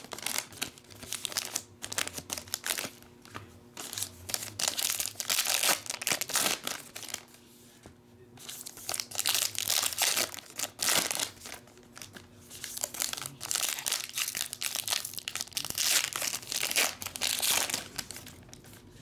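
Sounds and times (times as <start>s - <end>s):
foil wrapper crinkling and tearing: 0.0s - 3.1s, 3.8s - 7.4s, 8.5s - 18.8s.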